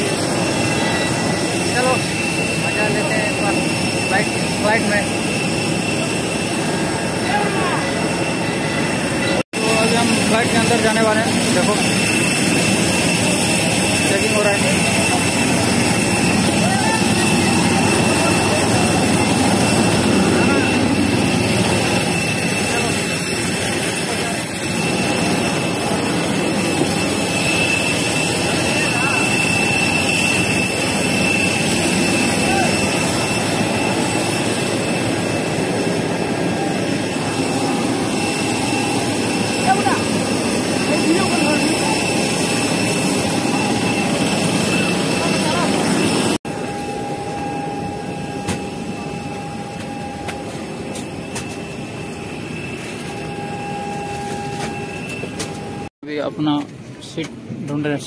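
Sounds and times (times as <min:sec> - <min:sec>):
high-pitched jet whine: 0:00.0 - 0:58.0
jet engine rush: 0:00.0 - 0:58.0.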